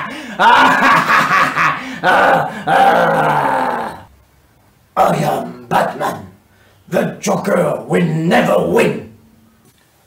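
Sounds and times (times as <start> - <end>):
man cackling: 0.0 - 4.0
man growling in gravelly voice: 1.6 - 4.1.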